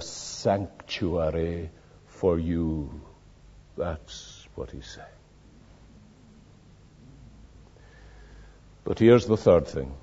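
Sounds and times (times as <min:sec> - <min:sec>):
man speaking: 0:00.0 - 0:03.2, 0:03.8 - 0:05.2, 0:08.8 - 0:10.0
cassette tape hum and hiss: 0:00.0 - 0:10.0.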